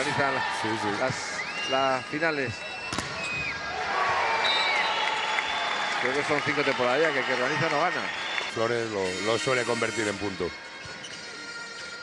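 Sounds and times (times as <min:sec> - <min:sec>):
crowd cheering and applauding: 0:00.0 - 0:10.1
whistle tones: 0:04.4 - 0:05.2.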